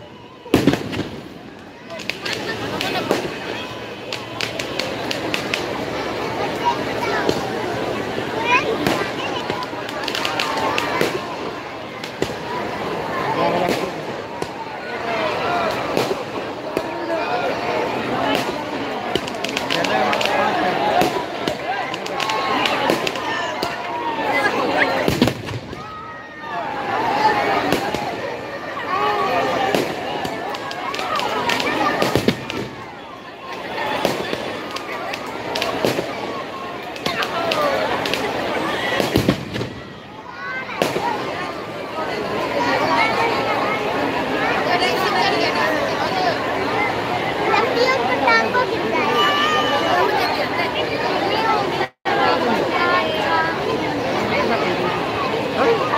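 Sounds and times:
crowd shouting and chatter: 0.0 - 55.9
firecrackers bursting: 0.4 - 42.2.

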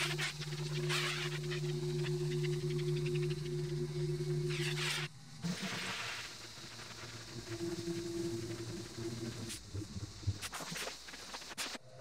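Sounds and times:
machine hum: 0.0 - 10.4.

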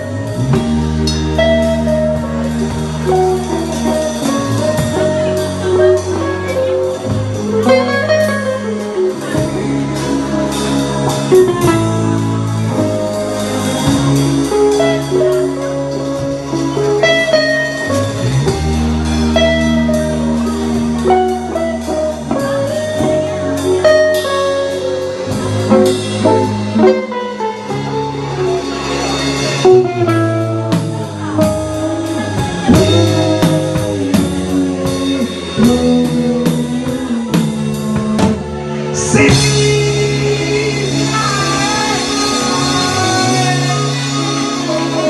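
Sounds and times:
drum kit and cymbals: 0.0 - 45.0
electric bass notes: 0.0 - 45.0
guitar notes: 0.0 - 45.0
melodic lead line: 0.0 - 45.0.

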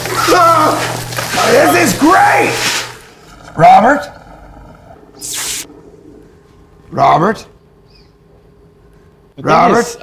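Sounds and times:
faint hum: 0.0 - 10.0
sharp hiss: 5.2 - 5.7.

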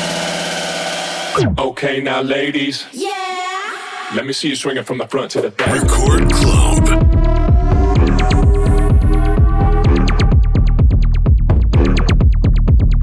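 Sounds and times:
repeating synth stabs: 5.7 - 10.4
heavy bass line: 5.7 - 13.0.

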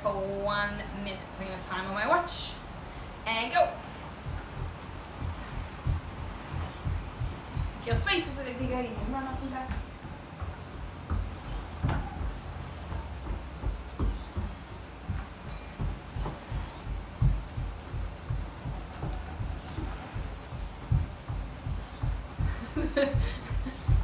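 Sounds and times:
running footsteps on indoor floor: 3.8 - 24.0.

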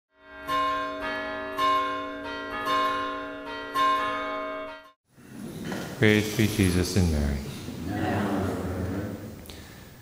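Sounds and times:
bells ringing: 0.2 - 5.0.

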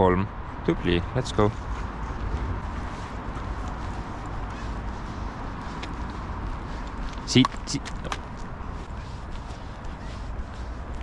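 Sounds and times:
steady low rumble: 0.0 - 11.0
footsteps on pavement: 1.1 - 11.0.

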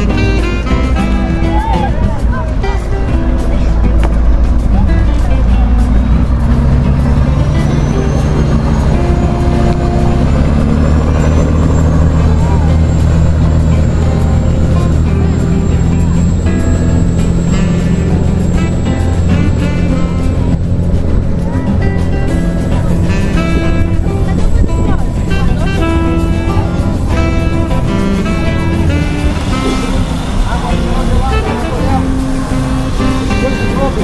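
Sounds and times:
background music: 0.0 - 34.0
motorboat engine droning: 0.0 - 34.0.

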